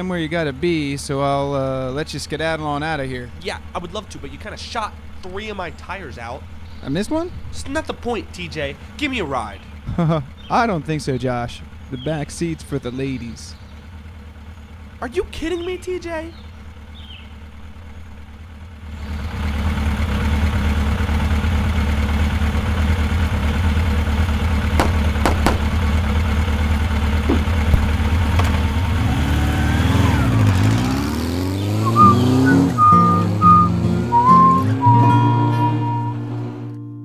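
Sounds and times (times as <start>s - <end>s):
motorcycle engine running: 0.0s - 36.0s
music with sustained notes: 32.2s - 37.0s.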